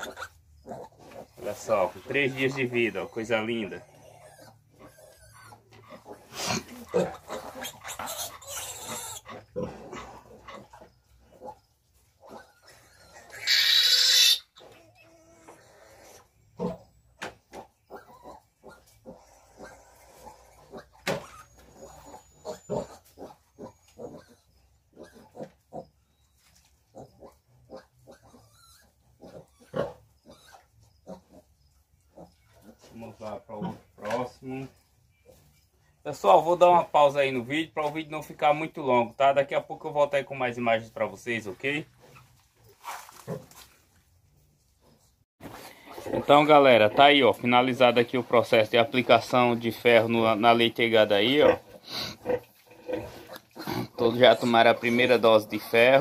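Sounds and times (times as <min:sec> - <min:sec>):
piglets squealing: 0:00.0 - 0:01.5, 0:02.2 - 0:11.6, 0:12.2 - 0:17.0, 0:17.6 - 0:25.9, 0:27.0 - 0:31.5, 0:48.8 - 0:56.0
piglets grunting: 0:00.0 - 0:25.9, 0:26.9 - 0:35.4, 0:45.5 - 0:56.0.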